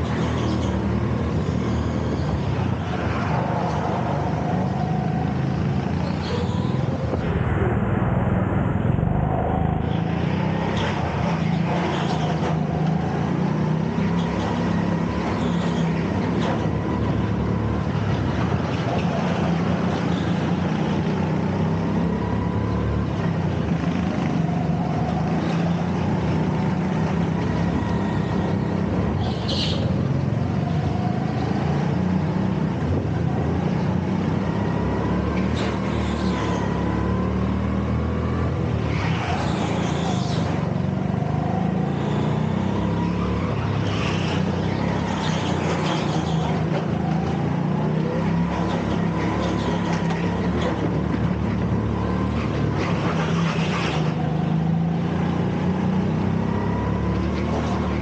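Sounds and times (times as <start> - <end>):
go-kart engine running: 0.0 - 8.3, 9.1 - 58.0
high-pitched squeal: 0.0 - 17.8.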